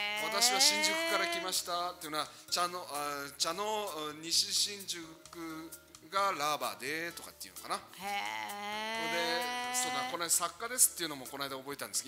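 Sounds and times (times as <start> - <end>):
person's drawn-out vowel: 0.0 - 1.6, 8.0 - 10.2.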